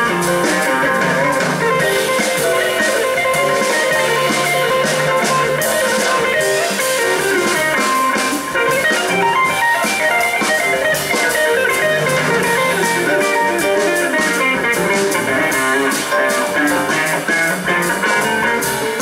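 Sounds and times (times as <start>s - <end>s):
bass guitar: 0.0s - 19.0s
drum kit with cymbals: 0.0s - 19.0s
electric guitar playing quick notes: 0.7s - 19.0s.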